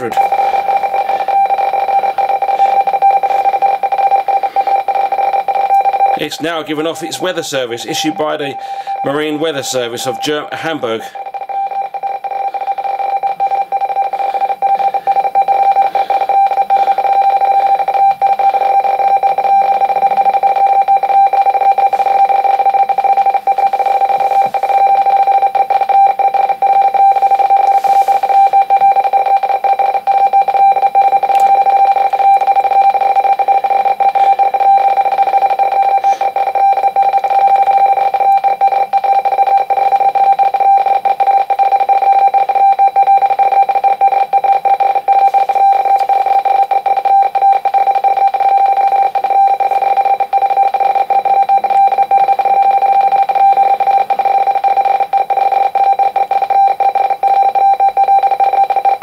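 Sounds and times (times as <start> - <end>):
radioteletype tones chattering: 0.0 - 59.0.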